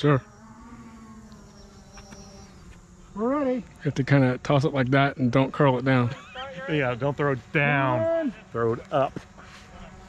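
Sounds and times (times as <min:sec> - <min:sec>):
small electric motor and propeller hum: 0:00.0 - 0:10.0.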